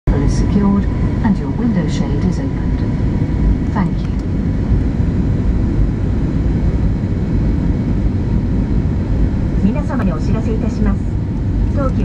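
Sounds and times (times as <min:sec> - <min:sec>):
airliner cabin engine rumble: 0:00.0 - 0:12.0.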